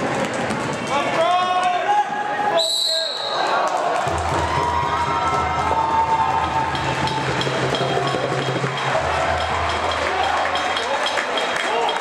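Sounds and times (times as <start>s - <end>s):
voices echoing in a hall: 0.0s - 4.0s
referee's whistle: 2.6s - 3.5s.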